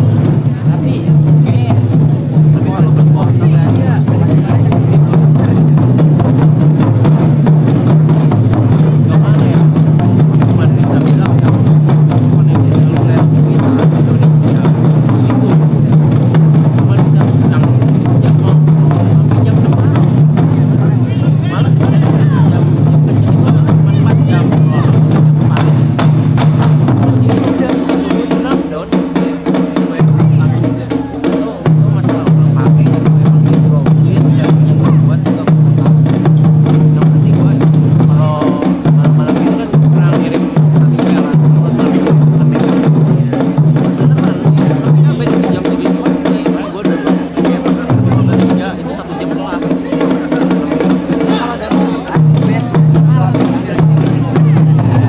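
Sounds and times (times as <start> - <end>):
taiko drums drumming: 0.0 - 55.0.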